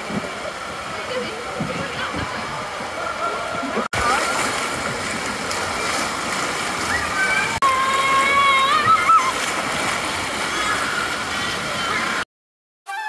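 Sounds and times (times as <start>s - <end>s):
water rushing and splashing: 0.0s - 12.3s
faint voices and shouts: 1.0s - 4.5s, 6.8s - 9.5s.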